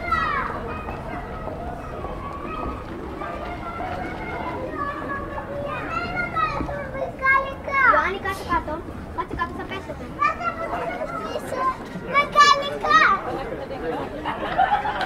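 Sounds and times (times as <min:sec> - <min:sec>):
children calling out: 0:00.0 - 0:13.4
people talking: 0:00.0 - 0:15.0.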